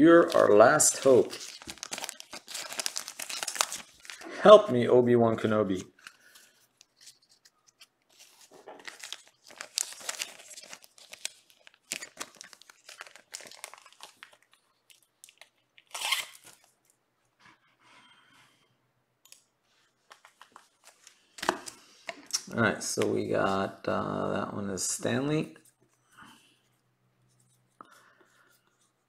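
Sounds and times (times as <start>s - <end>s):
crinkly wrapper being torn open: 0.2s - 4.3s, 6.8s - 16.7s.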